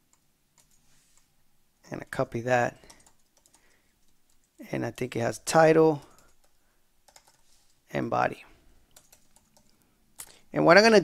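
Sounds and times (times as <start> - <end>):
keyboard typing: 0.1 - 1.3, 2.8 - 4.6, 6.1 - 7.8, 8.9 - 10.4.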